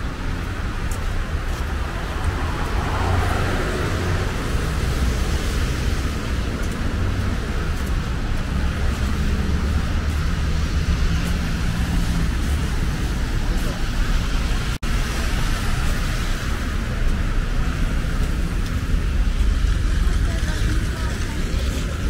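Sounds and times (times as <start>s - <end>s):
traffic rumble: 0.0s - 22.0s
tyres hissing on wet road: 0.0s - 22.0s.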